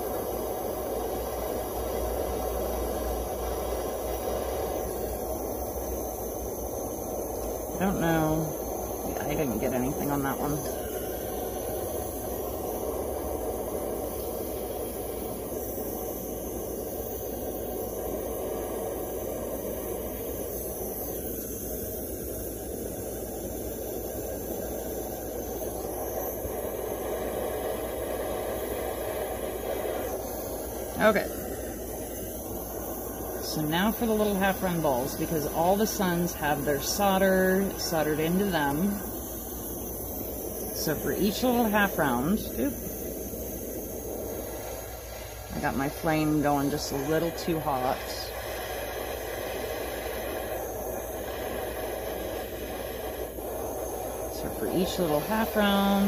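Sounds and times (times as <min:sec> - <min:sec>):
soldering torch flame rushing: 0:00.0 - 0:56.0.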